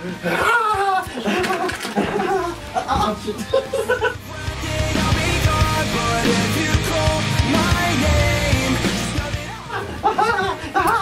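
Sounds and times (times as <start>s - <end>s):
boys yelling and laughing: 0.0s - 4.4s, 9.2s - 11.0s.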